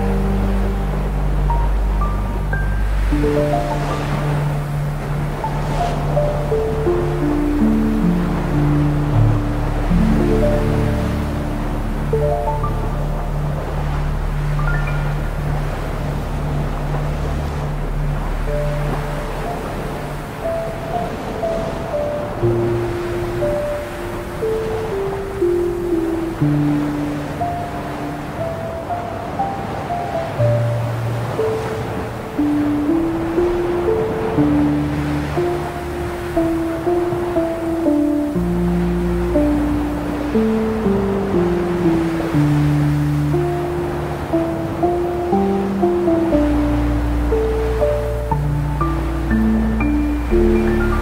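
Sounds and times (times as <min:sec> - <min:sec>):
ocean surf: 0:00.0 - 0:51.0
slow ambient music: 0:00.0 - 0:51.0.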